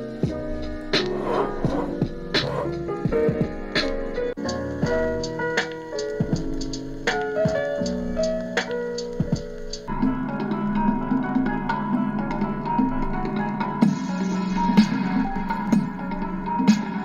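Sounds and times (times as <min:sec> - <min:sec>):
keyboard and drum beat music: 0:00.0 - 0:17.0.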